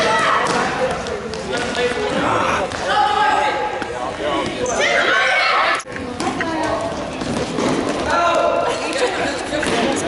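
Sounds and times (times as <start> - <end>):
voices calling out in a gym: 0.0 - 10.0.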